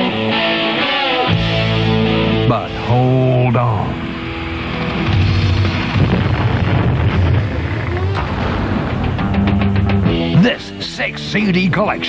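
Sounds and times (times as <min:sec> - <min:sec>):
heavy rock music: 0:00.0 - 0:12.0.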